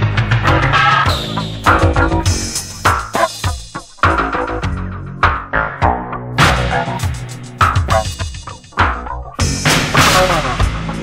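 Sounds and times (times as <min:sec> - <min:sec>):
electronic dance music with drum beat: 0:00.0 - 0:11.0.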